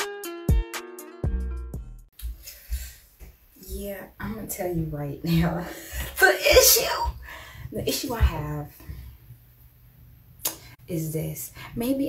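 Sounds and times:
person speaking: 3.6 - 8.8.

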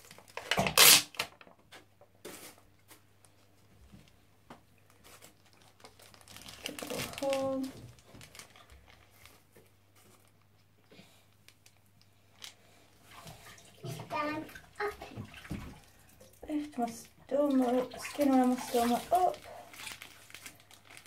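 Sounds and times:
plastic bag crinkling and rustling: 0.0 - 4.2, 4.8 - 12.7, 17.8 - 21.0
faint splashing of bath water: 2.4 - 21.0.

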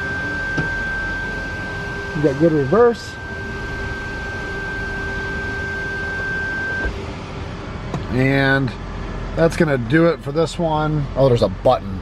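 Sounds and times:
electric car high-pitched whine: 0.0 - 10.4
low hybrid drive hum: 0.0 - 12.0.

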